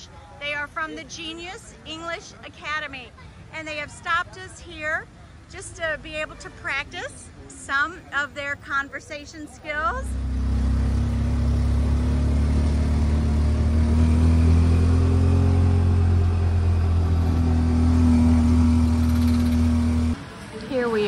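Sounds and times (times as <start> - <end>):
auto-rickshaw engine running: 10.0 - 21.0.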